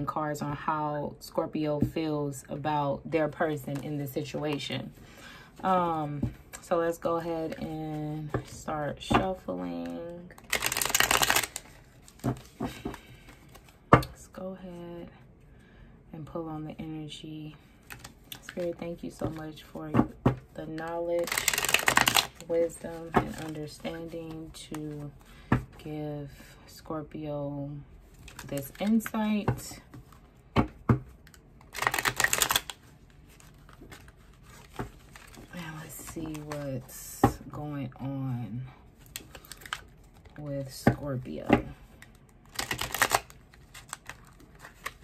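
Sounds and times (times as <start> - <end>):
cards being riffle-shuffled: 10.4 - 13.8, 21.2 - 25.6, 28.1 - 36.6, 42.0 - 45.0.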